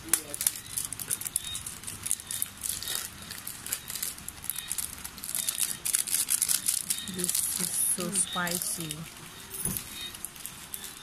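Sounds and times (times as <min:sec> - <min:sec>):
plastic sachets crinkling: 0:00.0 - 0:11.0.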